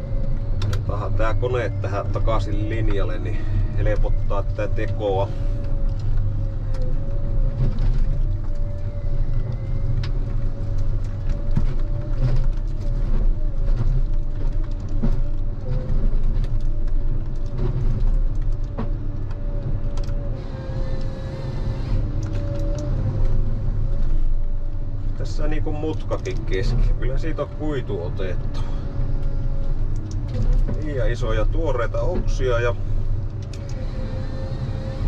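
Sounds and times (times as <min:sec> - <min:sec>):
high-pitched whine: 0:00.0 - 0:13.9, 0:18.8 - 0:32.9
engine drone: 0:00.0 - 0:35.0.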